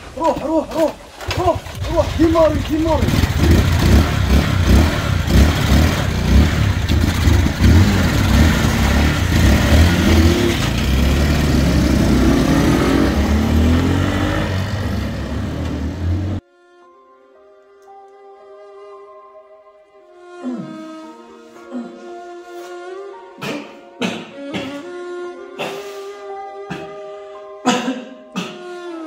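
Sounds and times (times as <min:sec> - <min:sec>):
motorcycles revving and accelerating: 0:01.6 - 0:16.4.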